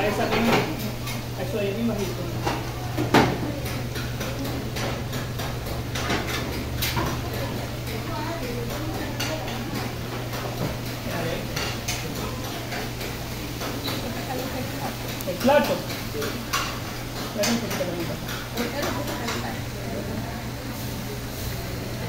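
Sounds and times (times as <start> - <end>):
oil sizzling: 0.7 - 22.0.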